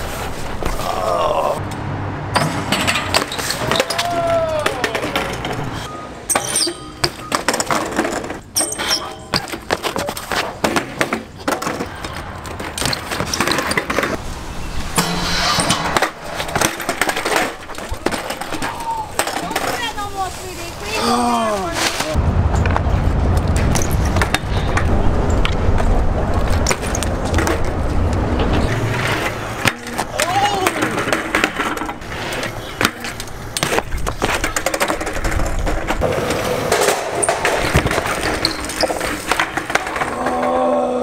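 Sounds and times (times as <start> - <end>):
bikes clattering on concrete: 1.7 - 14.3, 14.9 - 21.0, 21.6 - 40.8
sharp knocks and scrapes: 4.9 - 20.6, 26.5 - 40.2.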